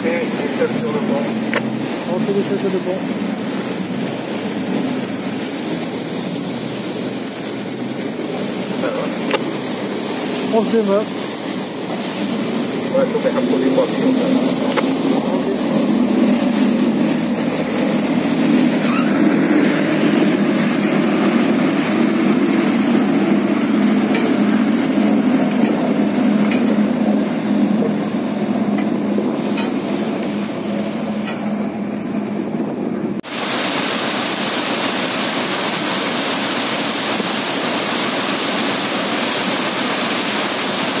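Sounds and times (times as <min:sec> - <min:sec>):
boat engines rumbling: 0:00.0 - 0:41.0
water rushing along hull: 0:00.0 - 0:41.0.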